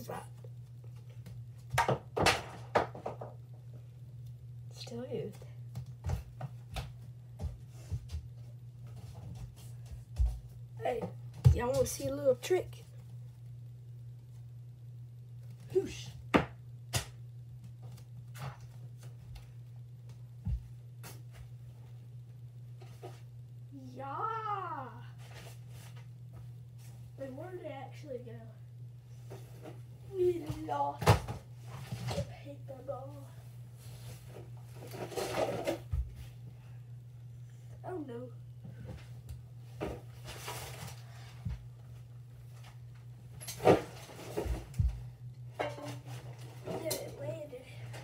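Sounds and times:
steady low hum: 0.0 - 48.0
knocks and thumps in a room: 1.0 - 3.6, 5.7 - 12.0, 16.2 - 21.5, 43.5 - 46.9
boy shouting: 23.8 - 25.0.

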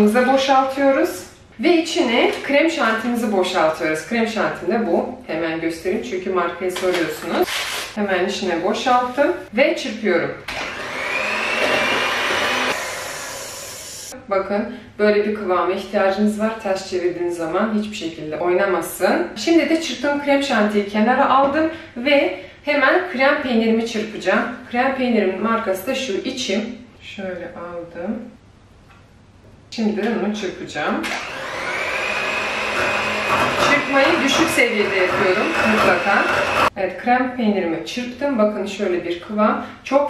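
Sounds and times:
electric hand mixer whine: 10.5 - 14.1, 31.0 - 36.7
liquid churning: 32.6 - 36.7.

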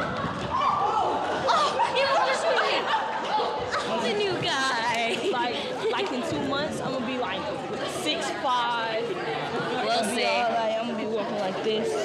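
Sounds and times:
excited group chatter: 0.0 - 12.0.

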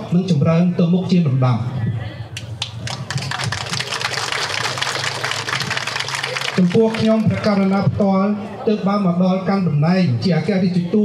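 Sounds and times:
audience applauding: 2.4 - 7.7.

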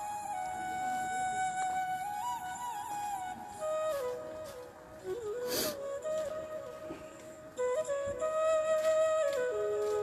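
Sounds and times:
slow flute melody: 0.0 - 10.0.

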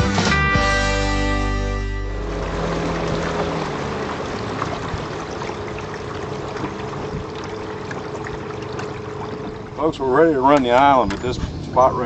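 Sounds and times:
guitar music: 0.0 - 4.2
river water rushing: 2.1 - 9.8.

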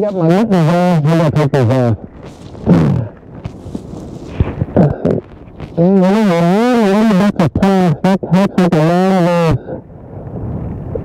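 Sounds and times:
crackle: 0.0 - 7.8, 9.5 - 11.0
wind buffeting microphone: 0.0 - 7.8, 9.1 - 11.0
sharp low thumps: 1.2 - 6.1.

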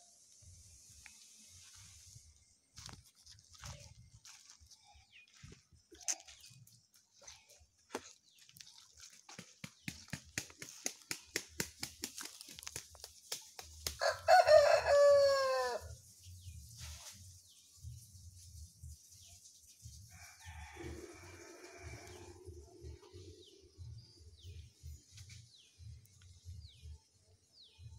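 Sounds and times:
rooster crowing: 14.0 - 15.9, 20.2 - 22.5.

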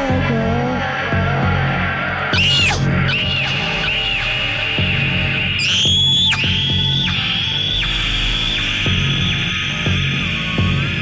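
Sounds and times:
spooky music: 0.0 - 11.0.

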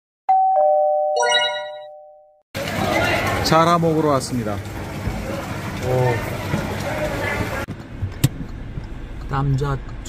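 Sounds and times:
three-note chime: 0.3 - 2.3.

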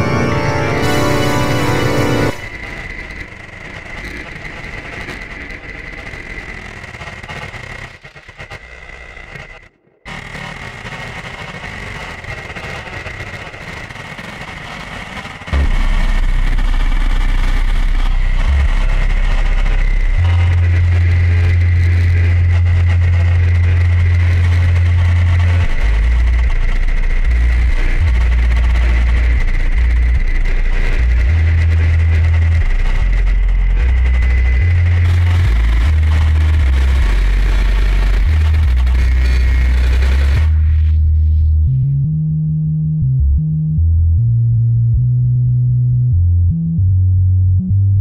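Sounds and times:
deep bass drone: 0.0 - 2.8, 15.6 - 48.0
noisy synth texture: 0.0 - 2.9, 25.1 - 41.9
steady high tone: 0.0 - 3.2.

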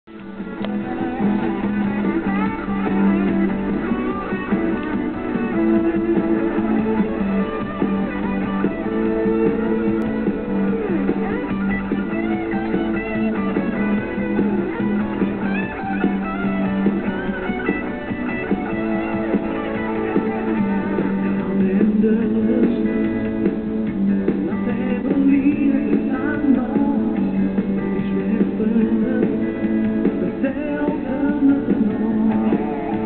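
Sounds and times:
rock band on electric guitars: 0.0 - 33.0.

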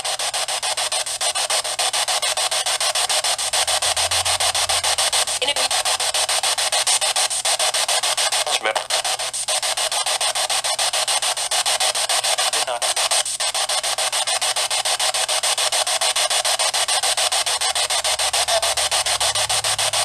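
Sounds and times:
choppy pulsing static hiss: 0.0 - 20.0.

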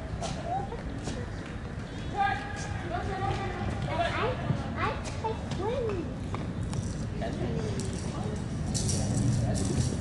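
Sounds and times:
low hum of indoor hall: 0.0 - 10.0.

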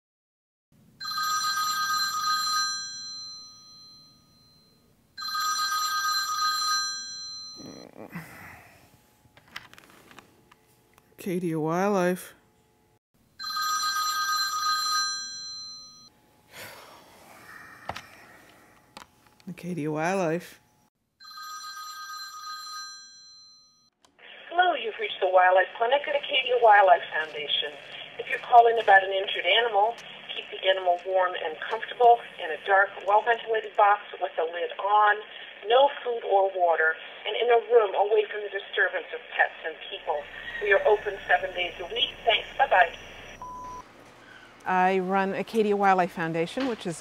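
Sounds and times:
telephone ringing: 1.0 - 7.6, 13.4 - 16.2, 21.2 - 23.9, 40.1 - 43.8.

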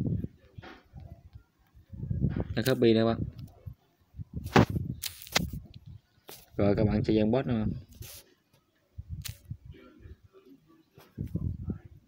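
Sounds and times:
faint voice murmur: 9.6 - 12.0.

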